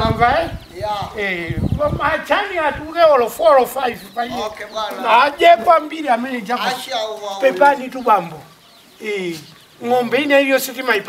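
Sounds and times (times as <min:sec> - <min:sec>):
man's voice: 0:00.0 - 0:11.0.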